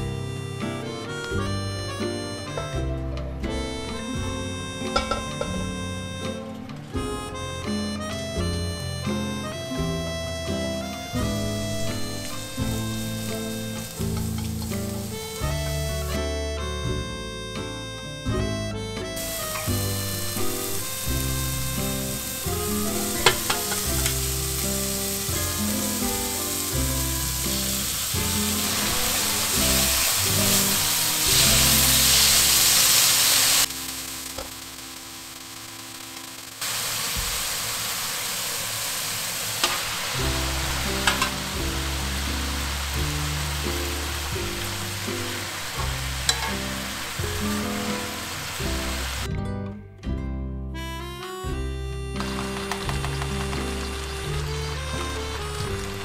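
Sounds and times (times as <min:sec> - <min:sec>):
vegetables sizzling in a wok: 0:12.0 - 0:16.3, 0:19.2 - 0:49.3, 0:52.3 - 0:56.0.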